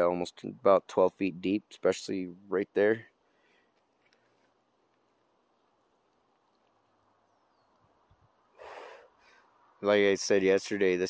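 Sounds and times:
man breathing out: 8.6s - 9.5s.

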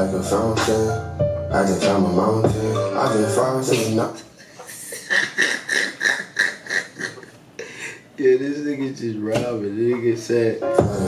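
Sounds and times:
man laughing in breathy bursts: 4.4s - 8.1s.

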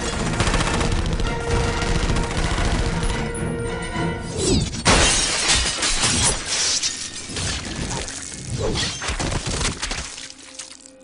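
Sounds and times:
film score music: 0.0s - 11.0s
glass shattering: 4.8s - 8.0s.

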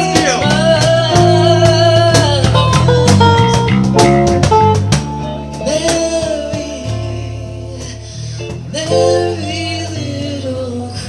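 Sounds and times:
man singing into a microphone: 0.0s - 3.4s, 5.6s - 11.0s
backing track with guitar: 0.0s - 11.0s.

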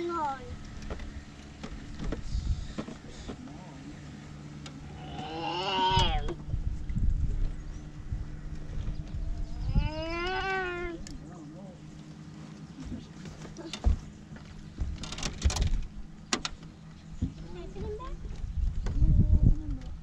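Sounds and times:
low hum: 0.0s - 20.0s
drawn-out voice-like call: 4.8s - 6.4s
sharp knocks and clicks: 13.3s - 17.4s.

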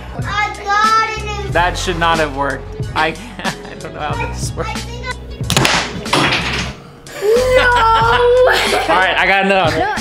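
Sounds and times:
background music: 0.0s - 10.0s
wooden blocks crashing on table: 5.5s - 6.8s
people laughing: 7.1s - 9.2s.

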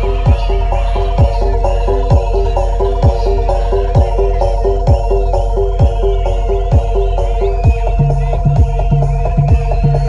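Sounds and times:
deep drum strokes: 0.0s - 10.0s.

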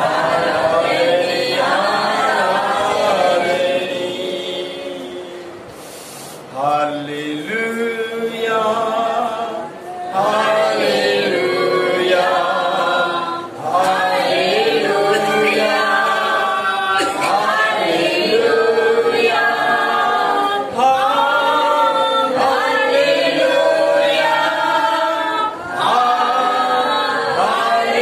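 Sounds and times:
man singing unaccompanied: 6.6s - 10.6s.

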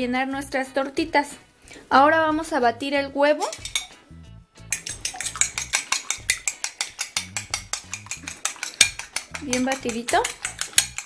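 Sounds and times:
fork clinking against glass bowl: 3.4s - 4.0s, 4.7s - 11.0s.

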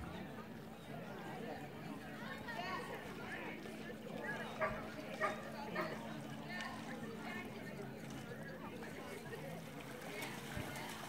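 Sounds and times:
dog barking: 5.2s - 5.9s.

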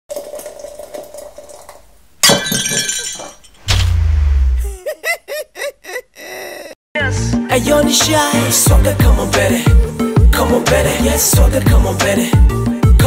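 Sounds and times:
glass breaking crash: 2.2s - 4.0s
deep booming hit: 3.7s - 4.7s.

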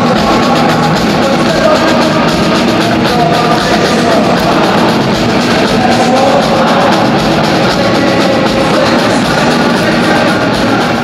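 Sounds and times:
drum strikes: 0.0s - 11.0s
loud rock band music: 0.0s - 11.0s.

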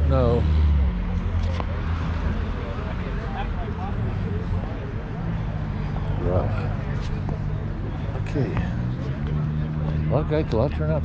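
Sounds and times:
car engine rumble: 0.0s - 11.0s
faint voices: 0.0s - 11.0s.

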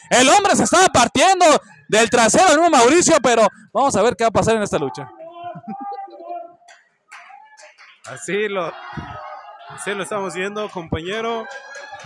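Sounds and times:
spectators calling out: 4.8s - 6.6s, 8.1s - 12.0s.

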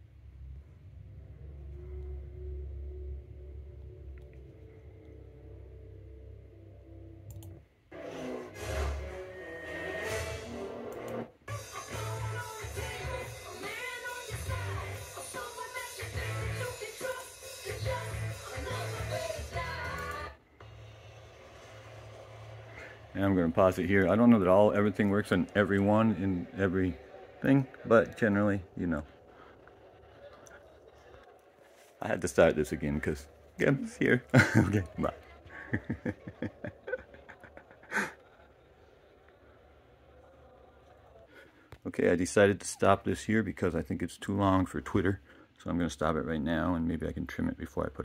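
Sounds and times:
steady low background sound: 0.0s - 9.7s, 20.4s - 47.6s
rock song with singing: 11.5s - 20.4s
man laughing: 33.6s - 39.0s.

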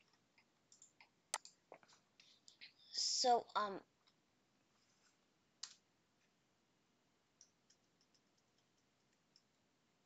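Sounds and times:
faint computer clicks: 0.0s - 2.8s, 5.6s - 5.8s, 7.4s - 9.6s.

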